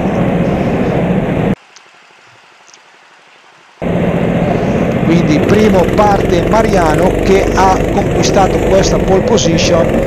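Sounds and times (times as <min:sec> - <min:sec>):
go-kart engine running: 0:03.8 - 0:10.0.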